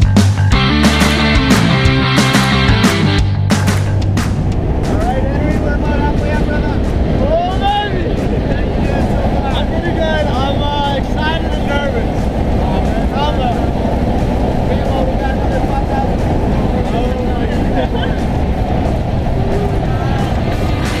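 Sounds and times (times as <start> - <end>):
plane engine and wind rush: 0.0 - 21.0
people shouting: 19.3 - 21.0.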